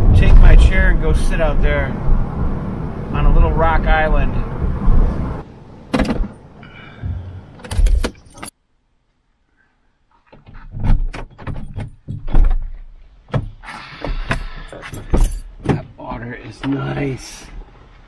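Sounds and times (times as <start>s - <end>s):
road rumble inside vehicle: 0.0s - 8.5s
car door opening: 5.9s - 6.4s.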